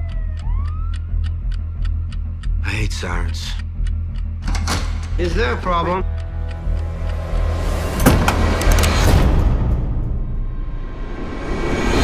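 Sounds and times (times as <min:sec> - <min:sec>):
sharp clicks and hits: 0:06.5 - 0:09.6
swell of noise: 0:10.5 - 0:12.0.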